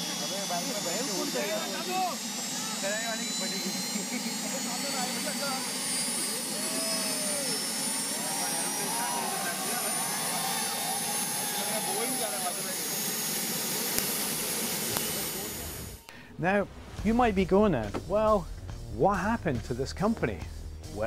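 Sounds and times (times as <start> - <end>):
crowd voices: 0.0 - 17.2
gas turbine engine roaring and whining: 0.0 - 21.0.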